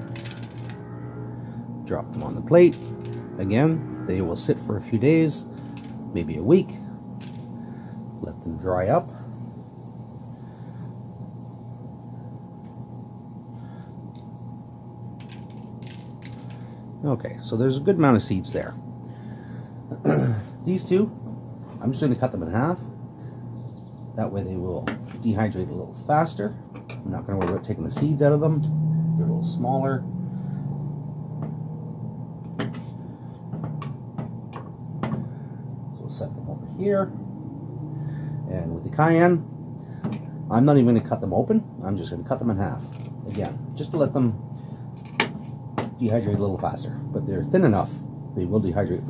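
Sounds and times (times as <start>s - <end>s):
low background hum: 0.0s - 49.0s.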